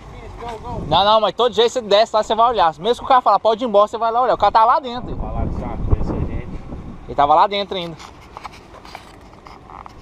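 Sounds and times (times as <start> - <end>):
faint outdoor background noise: 0.0 - 10.0.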